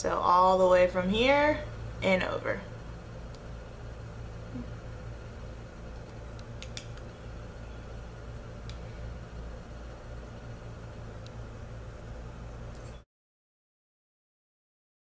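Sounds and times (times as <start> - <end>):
low room hum: 0.0 - 13.1.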